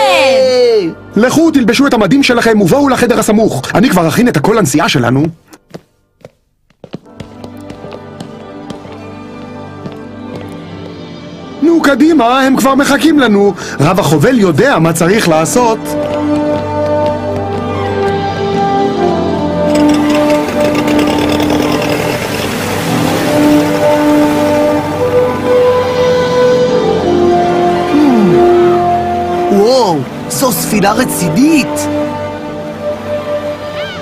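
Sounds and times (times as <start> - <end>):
background music: 0.0 - 34.0
small boat engine running: 19.7 - 23.9.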